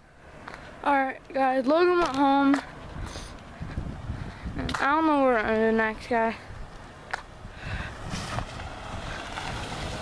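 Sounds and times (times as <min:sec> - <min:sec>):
wind buffeting microphone: 0:01.6 - 0:10.0.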